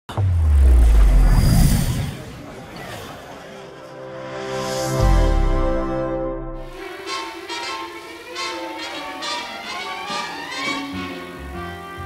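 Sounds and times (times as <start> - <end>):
deep bass rumble: 0.1 - 2.3
high rising whoosh: 0.1 - 2.7.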